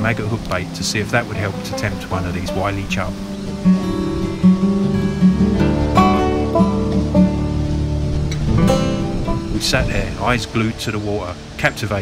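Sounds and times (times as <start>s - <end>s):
acoustic guitar picked and strummed: 0.0s - 11.9s.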